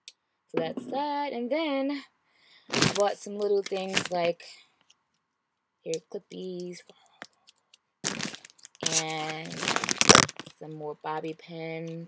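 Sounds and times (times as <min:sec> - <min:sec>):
packaging crinkling: 0:02.7 - 0:04.3, 0:08.0 - 0:10.6.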